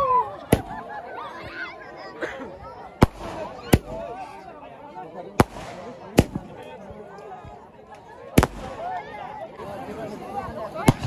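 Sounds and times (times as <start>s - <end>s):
crowd chatter and shouts: 0.0s - 11.0s
fireworks bangs: 3.0s - 4.1s, 5.4s - 6.6s, 8.4s - 8.9s, 10.8s - 11.0s.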